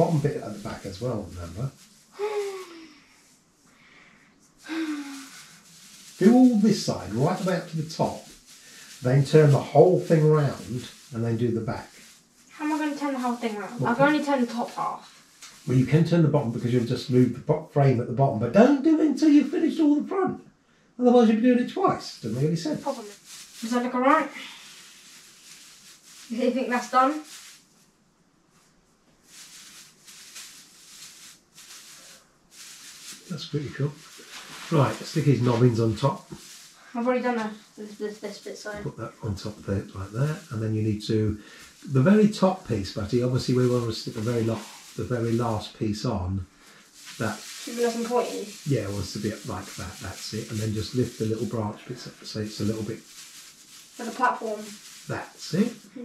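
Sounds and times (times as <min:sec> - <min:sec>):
plastic branches rustling: 0:00.0 - 0:03.4, 0:04.5 - 0:17.4, 0:22.0 - 0:27.9, 0:28.5 - 0:56.0
person sighing: 0:04.7 - 0:05.4.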